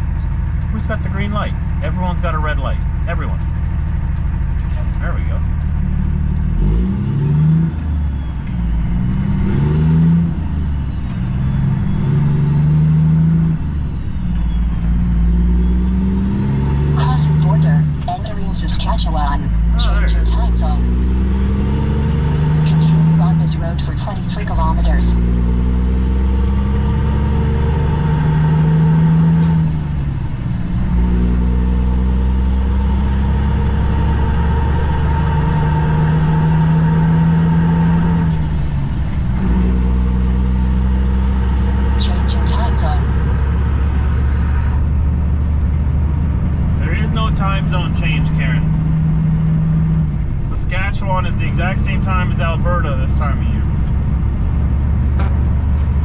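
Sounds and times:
diesel truck engine shifting gears: 0.0s - 56.0s.

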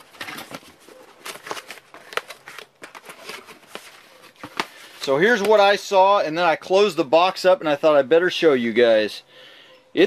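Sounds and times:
cardboard flaps scraping and rustling: 0.0s - 5.6s.

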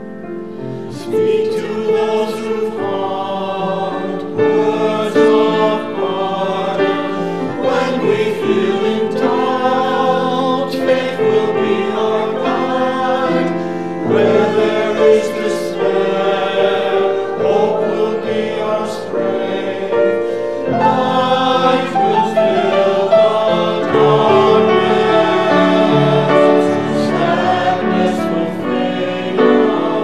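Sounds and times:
mixed choir singing: 0.0s - 30.0s
piano accompaniment: 0.0s - 30.0s.

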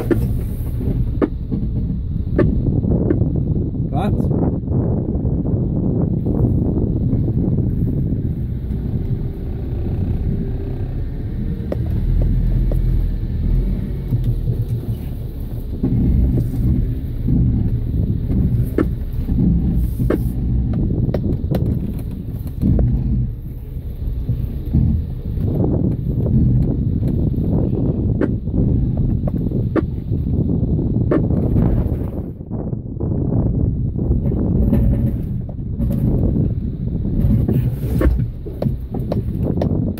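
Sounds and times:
vehicle engine idling: 5.5s - 39.9s.

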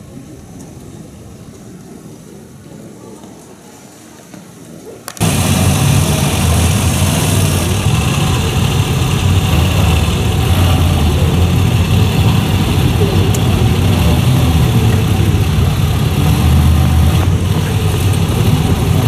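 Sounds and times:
motorcycle engines low rumble: 5.2s - 19.0s.

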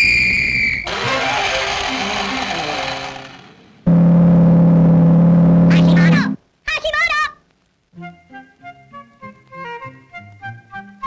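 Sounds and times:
high whistle-like tone: 0.0s - 0.9s.

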